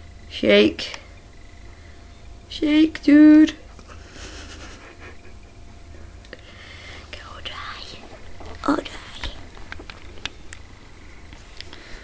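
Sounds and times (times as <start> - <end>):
soft breathy whispering: 6.4 - 9.5.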